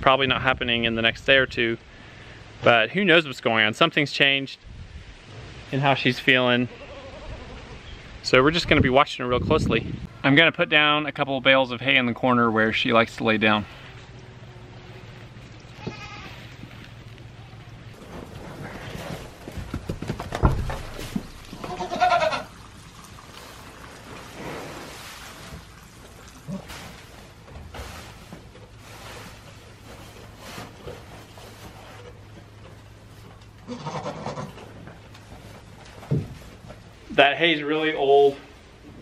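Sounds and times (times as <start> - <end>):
goats bleating: 15.7 - 16.4, 21.6 - 22.5
hay rustling: 23.4 - 32.3.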